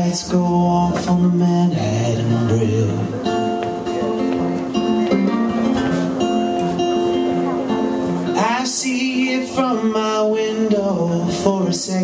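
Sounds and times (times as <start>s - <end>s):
electric guitar chords: 0.0s - 12.0s.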